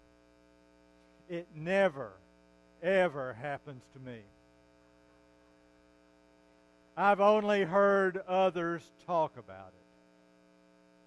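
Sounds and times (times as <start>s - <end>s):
electrical mains hum: 0.0s - 11.0s
man's voice: 1.3s - 2.1s, 2.8s - 4.3s, 7.0s - 9.8s.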